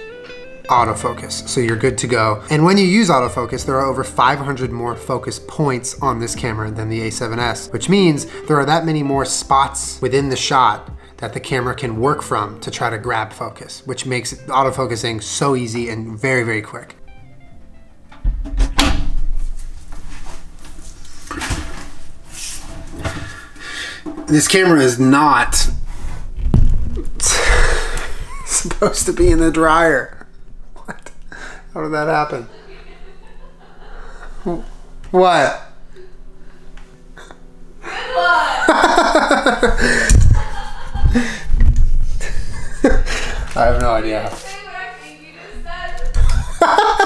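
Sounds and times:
music: 0.0 - 47.0
clothes rustling in dryer drum: 18.1 - 24.3
heavy low thump: 25.5 - 28.3, 39.6 - 42.6
laughter: 28.0 - 28.9, 32.4 - 34.6, 38.4 - 41.5, 42.2 - 43.6, 46.3 - 47.0.

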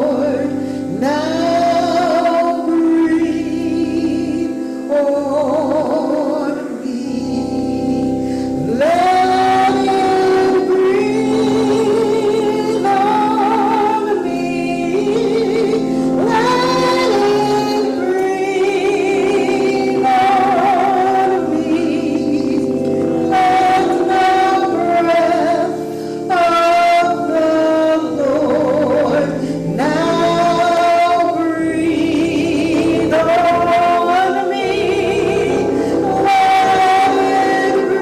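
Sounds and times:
gospel singing: 0.0 - 38.0
sustained accompaniment: 0.0 - 38.0.

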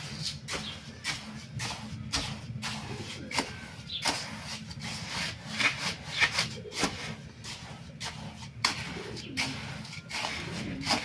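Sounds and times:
wooden block scraping granular mix: 0.0 - 11.0.

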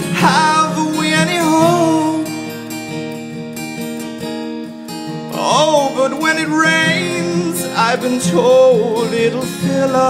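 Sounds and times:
man singing: 0.0 - 2.5, 5.3 - 10.0
acoustic guitar strumming chords: 0.0 - 10.0.

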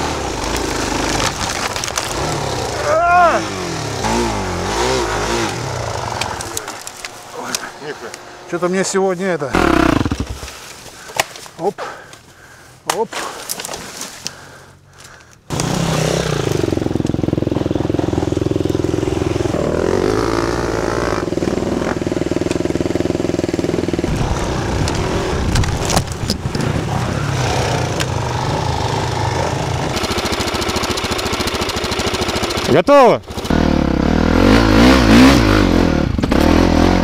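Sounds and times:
motorcycle engine running: 2.0 - 8.5, 9.6 - 10.7, 15.6 - 37.0
person shouting: 2.8 - 3.6.

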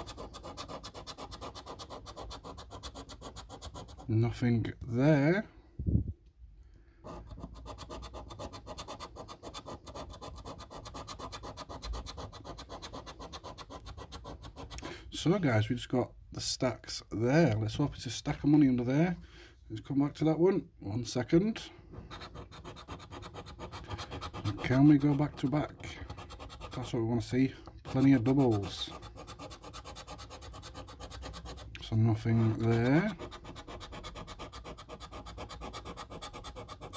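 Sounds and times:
coin scraping scratch card: 0.0 - 4.1, 7.1 - 14.9, 22.1 - 27.0, 27.9 - 36.9.

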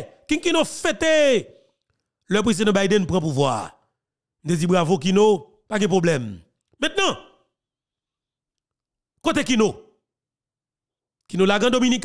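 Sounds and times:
man speaking: 0.0 - 1.6, 2.3 - 3.8, 4.4 - 7.4, 9.2 - 10.0, 11.3 - 12.0.

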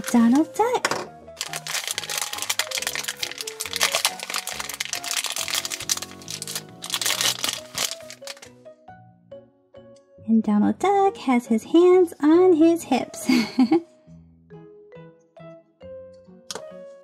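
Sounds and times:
background music: 0.0 - 17.0
plastic bag crinkling: 1.4 - 8.5.

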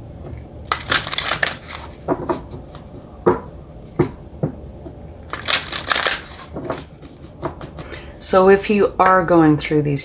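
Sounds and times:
cards tapping: 0.2 - 4.2, 5.3 - 8.0
cards shuffling by hand: 0.7 - 3.0, 5.3 - 8.0.

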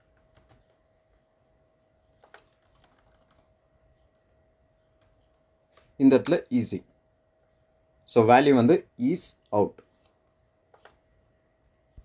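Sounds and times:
computer keyboard keystrokes: 0.0 - 0.8, 2.2 - 3.5, 10.7 - 11.0
faint steady hum: 0.0 - 12.0.

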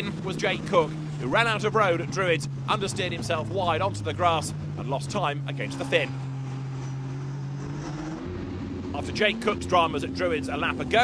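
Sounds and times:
racing car engine at steady revs: 0.0 - 11.0.

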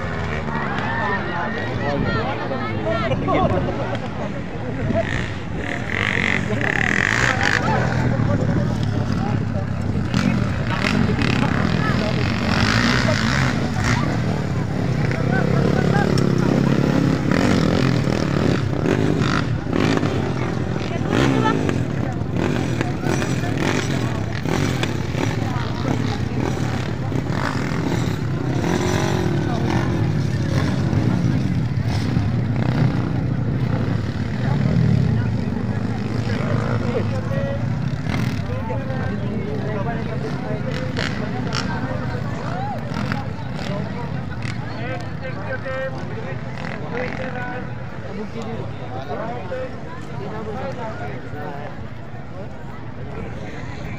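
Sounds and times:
motorcycle engines revving: 0.0 - 53.9
spectators talking: 0.0 - 53.9.

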